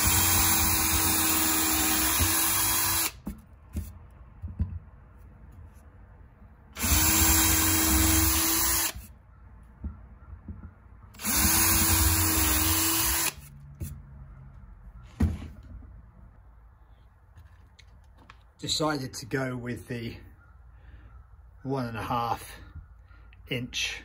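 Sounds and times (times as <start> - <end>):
electric drill whining: 0.0 - 3.2, 6.8 - 9.1, 11.2 - 13.5.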